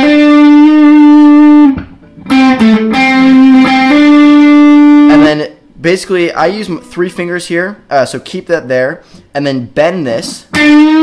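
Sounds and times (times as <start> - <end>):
electric guitar notes: 0.0 - 5.5, 10.4 - 11.0.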